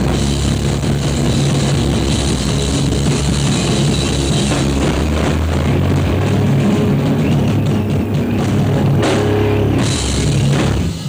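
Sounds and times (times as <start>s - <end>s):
drum hits: 0.0s - 11.0s
rock band playing live: 0.0s - 11.0s.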